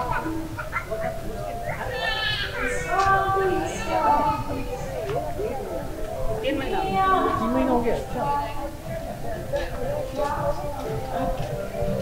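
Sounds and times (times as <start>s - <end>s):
people talking nearby: 0.0s - 12.0s
wavering bleat-like call: 1.9s - 2.9s.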